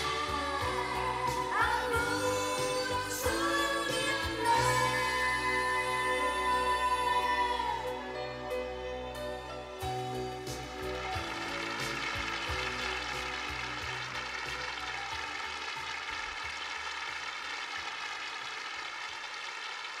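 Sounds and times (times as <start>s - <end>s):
backing music: 0.0s - 18.1s
audience applauding: 10.5s - 20.0s.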